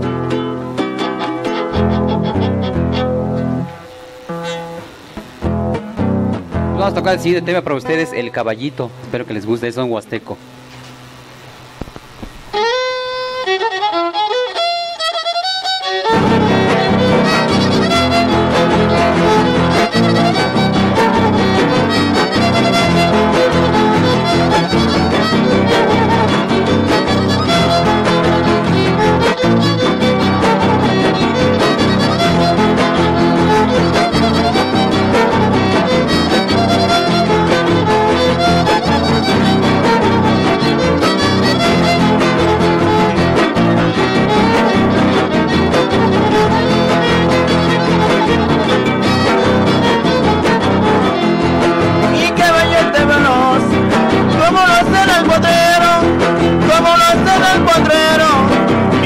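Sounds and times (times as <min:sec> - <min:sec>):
strummed guitars: 0:00.0 - 0:59.0
violin melody: 0:00.2 - 0:05.8, 0:12.4 - 0:59.0.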